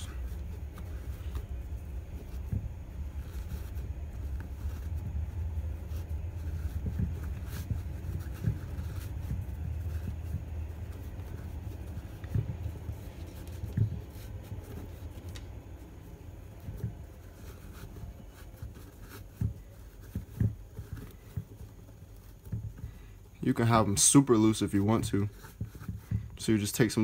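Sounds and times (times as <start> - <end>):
steady low rumble: 0.0 - 24.8
soft rustling of laces: 0.0 - 27.0.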